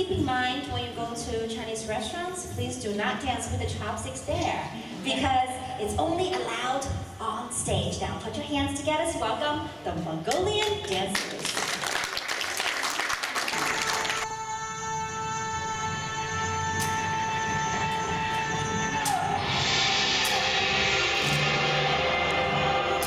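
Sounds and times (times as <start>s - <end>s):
audience applause: 10.6s - 14.3s
music with long held notes: 13.8s - 23.0s.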